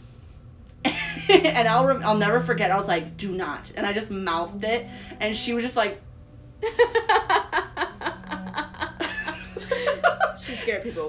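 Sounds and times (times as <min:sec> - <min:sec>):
woman laughing: 0:00.9 - 0:01.7, 0:06.6 - 0:11.0.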